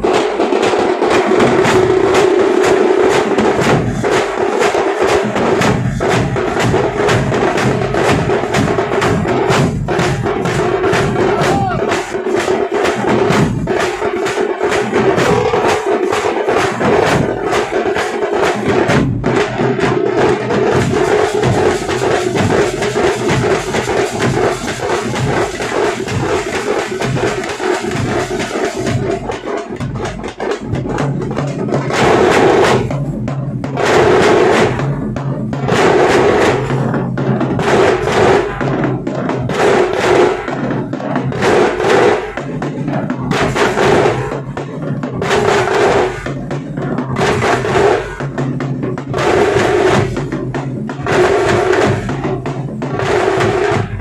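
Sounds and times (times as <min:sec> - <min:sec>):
frame drums and bass drums: 0:00.0 - 0:54.0.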